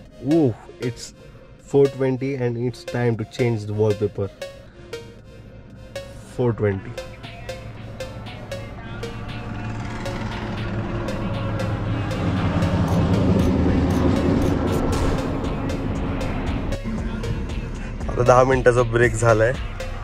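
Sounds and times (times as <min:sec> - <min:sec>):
background music: 0:00.0 - 0:20.0
lorry passing on highway: 0:04.4 - 0:18.1.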